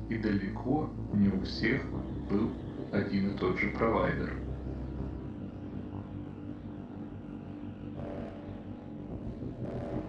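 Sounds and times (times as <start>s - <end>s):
dark ambient drone: 0.0s - 10.0s.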